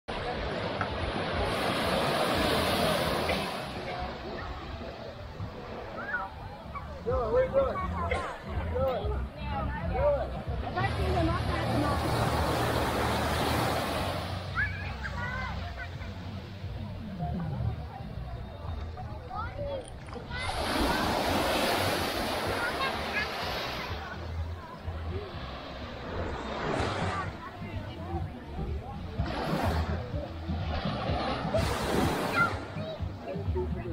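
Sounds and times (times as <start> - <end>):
small waves washing on sand: 0.1 - 5.9, 10.7 - 15.9, 20.2 - 27.6, 28.7 - 32.9
people's voices: 0.1 - 33.9.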